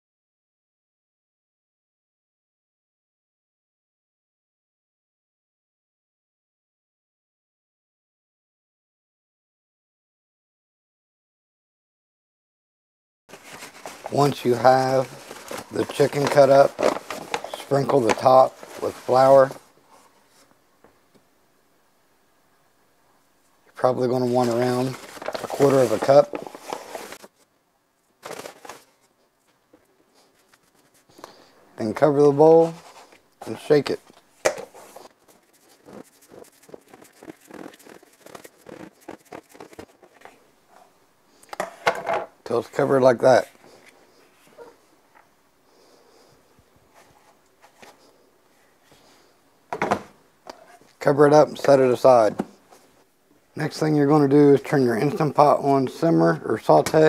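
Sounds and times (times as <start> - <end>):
paper bag handling: 13.3 - 19.6, 24.0 - 27.3, 28.2 - 29.0, 34.8 - 40.4.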